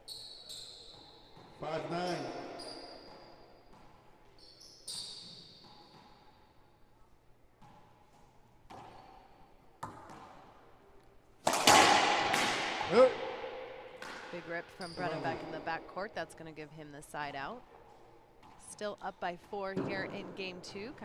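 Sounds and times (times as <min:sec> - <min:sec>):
racquetball bouncing: 0:00.0 - 0:16.3, 0:17.6 - 0:21.0
ball cracking off racquet and walls: 0:08.6 - 0:10.7, 0:11.4 - 0:14.4.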